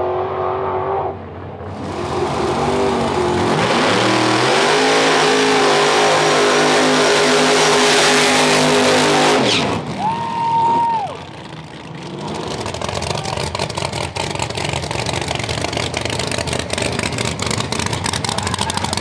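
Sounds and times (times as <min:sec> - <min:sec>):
drag car engine revving: 0:00.0 - 0:19.0.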